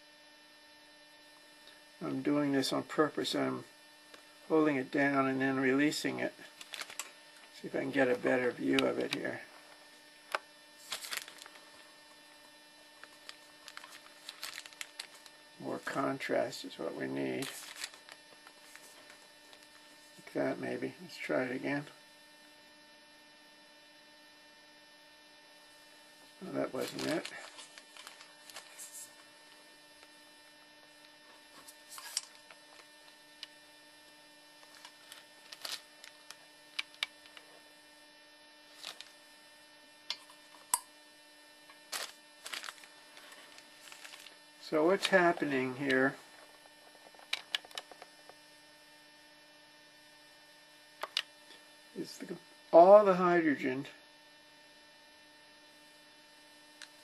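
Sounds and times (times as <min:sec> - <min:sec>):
faint electrical hum: 0:00.0 - 0:57.0.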